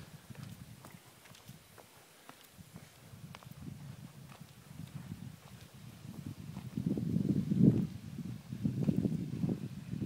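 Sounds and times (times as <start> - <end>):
footsteps on hard path: 0.0 - 9.7.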